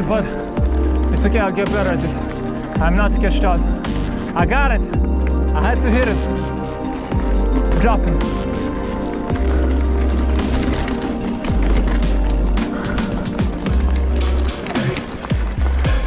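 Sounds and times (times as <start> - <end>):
mountain bike rattling on rocky trail: 0.0 - 16.0.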